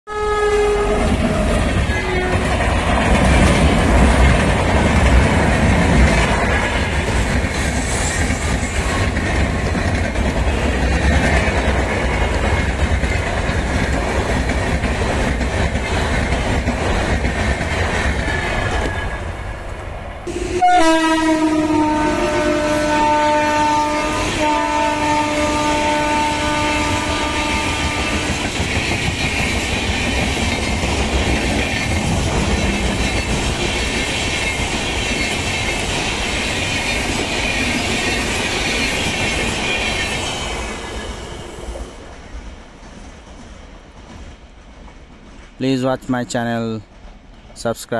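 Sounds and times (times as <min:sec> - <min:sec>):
train horn blast: 0:00.1 - 0:02.5, 0:20.3 - 0:28.4
train wheels clattering on track: 0:00.7 - 0:19.8, 0:23.5 - 0:47.9.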